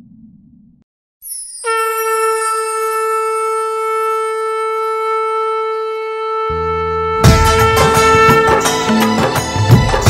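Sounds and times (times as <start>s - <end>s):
conch shell blown note: 1.6s - 9.9s.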